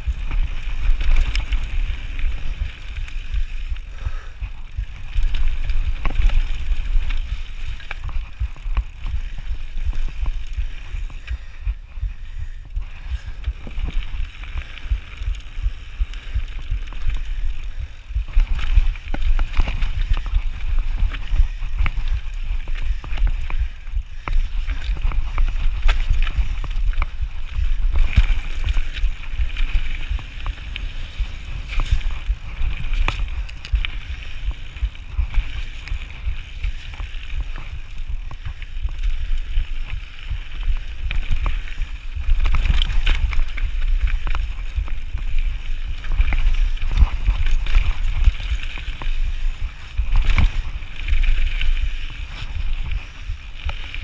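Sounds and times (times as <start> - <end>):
bike rattling over stones: 0.0 - 54.0
wind rumble on microphone: 0.0 - 54.0.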